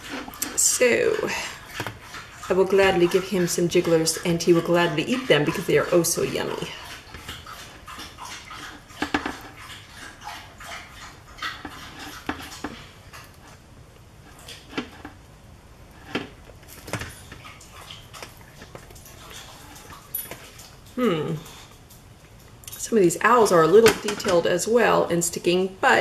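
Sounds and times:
wet squishing of gelatin: 16.0s - 22.7s.

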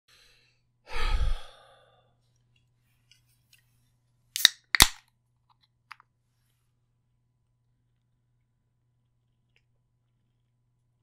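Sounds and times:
drink can tab cracking open: 4.4s - 5.0s.

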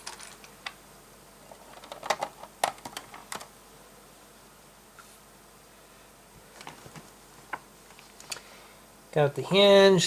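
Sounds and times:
plastic toy bricks clattering: 0.0s - 0.5s, 1.5s - 3.4s.

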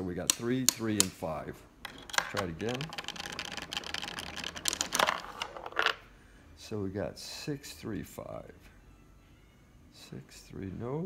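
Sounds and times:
dice clattering on revolving table: 1.8s - 6.1s.

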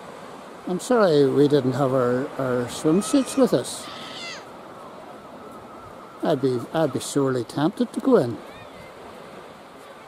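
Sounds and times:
small sea waves on shore: 0.0s - 10.0s
falling animal cry: 3.0s - 4.5s.

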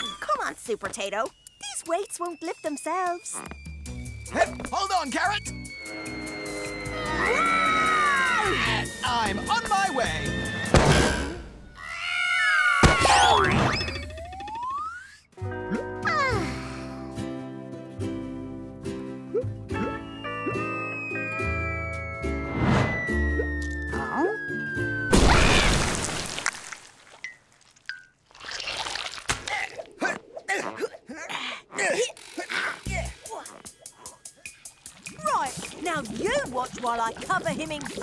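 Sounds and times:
music: 0.1s - 11.5s, 15.4s - 25.2s, 32.8s - 38.0s
cartoon effects: 12.8s - 15.3s
gliding whistle-like tones: 19.8s - 25.1s
long rising whistle: 20.0s - 25.2s
cartoon splash: 25.1s - 26.6s.

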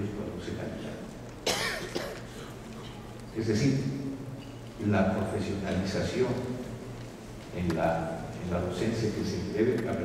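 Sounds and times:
person coughing: 1.4s - 3.0s.

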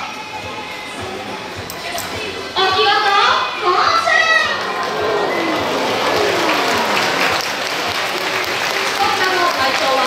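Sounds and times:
audience applauding: 4.5s - 10.0s.

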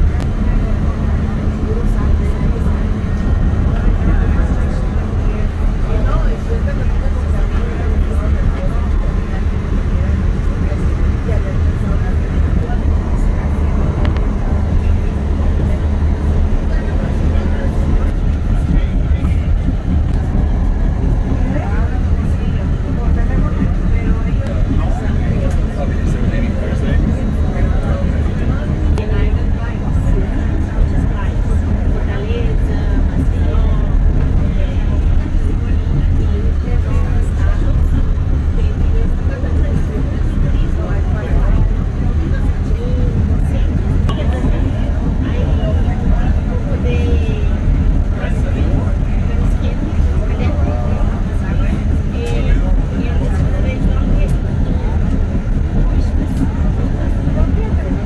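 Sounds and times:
indistinct voices talking: 0.0s - 58.0s
train rumbling: 0.0s - 58.0s.

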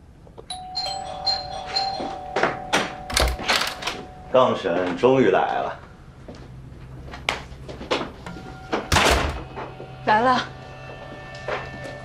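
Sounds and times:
electronic doorbell chime: 0.5s - 4.9s.

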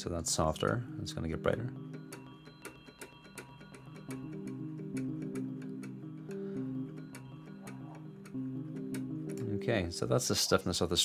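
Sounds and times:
sharp clicks on key strikes: 1.9s - 9.5s
electric piano held notes: 4.1s - 9.8s.

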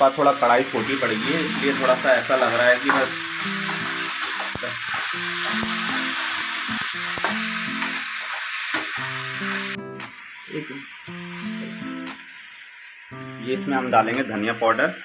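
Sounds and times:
vegetables sizzling in a pan: 0.0s - 15.0s
background music: 1.0s - 4.4s.

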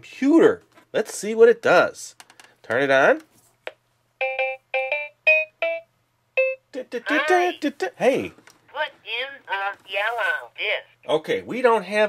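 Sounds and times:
electronic toy beeping jingle: 4.2s - 6.7s.

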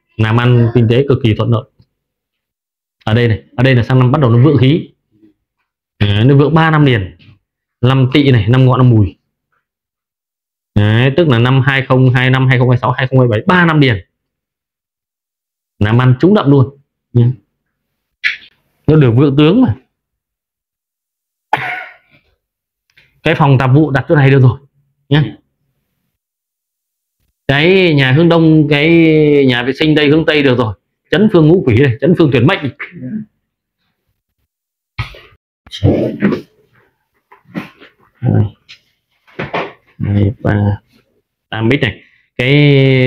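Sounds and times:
man speaking: 0.0s - 1.8s, 3.0s - 5.0s, 6.0s - 9.2s, 10.8s - 14.1s, 15.8s - 17.5s, 18.9s - 19.9s, 23.2s - 25.5s, 27.5s - 33.3s, 38.2s - 38.6s, 40.0s - 40.9s, 41.5s - 43.0s
man coughing: 21.5s - 22.2s.

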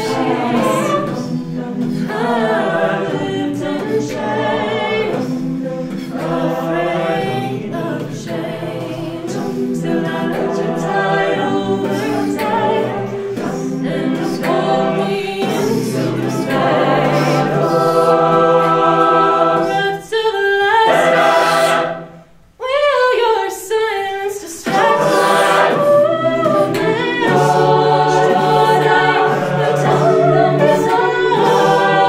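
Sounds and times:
backing vocal harmonies: 0.0s - 32.0s
vocal percussion: 0.0s - 32.0s.

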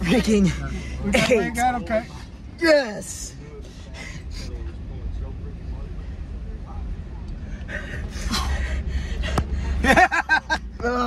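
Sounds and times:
car engine rumble: 0.0s - 11.0s.

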